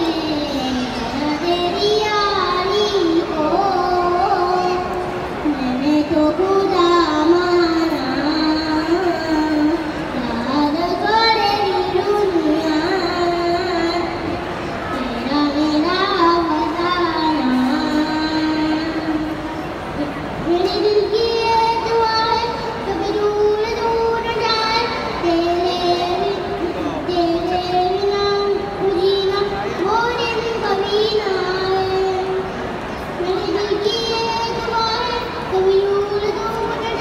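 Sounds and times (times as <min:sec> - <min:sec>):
boy singing into microphone: 0:00.0 - 0:37.0.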